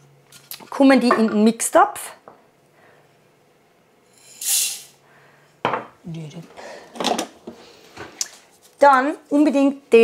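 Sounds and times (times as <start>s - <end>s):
kitchenware clattering: 0.7s - 1.6s, 5.6s - 6.0s, 6.9s - 7.5s
grains poured into metal bowl: 4.1s - 4.9s.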